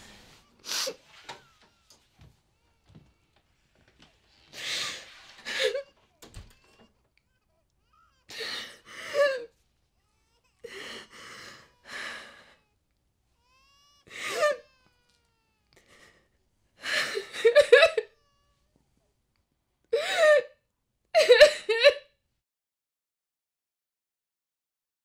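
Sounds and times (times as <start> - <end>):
woman sobbing: 4.5 - 6.9, 8.2 - 9.6, 10.6 - 12.6, 14.0 - 14.8, 15.8 - 18.4, 19.9 - 20.6, 21.2 - 22.1.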